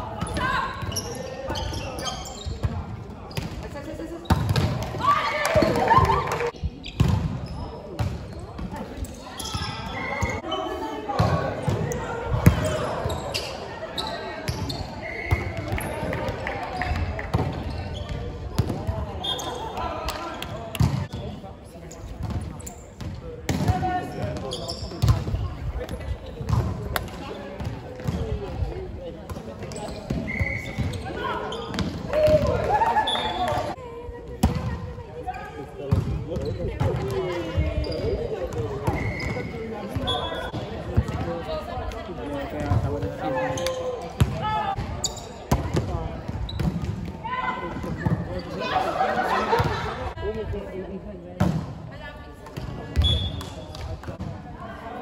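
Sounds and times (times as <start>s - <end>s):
sneakers squeaking on court: 0.2s - 4.8s, 6.6s - 10.8s, 11.8s - 16.1s, 16.8s - 23.2s, 24.1s - 28.2s, 29.3s - 32.0s, 35.9s - 41.3s, 42.4s - 47.0s.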